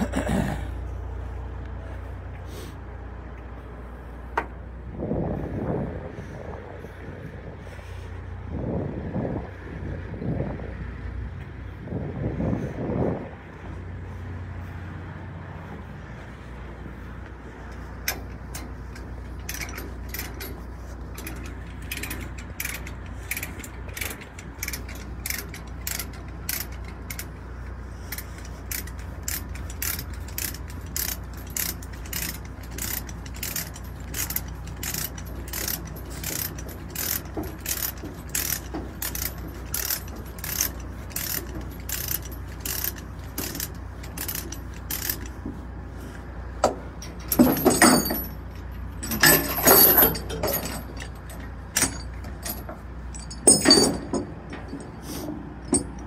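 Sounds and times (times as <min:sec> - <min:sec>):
metal rattling: 0:16.9 - 0:45.8, 0:46.5 - 0:56.0
ratchet pawl clicking: 0:18.1 - 0:45.4.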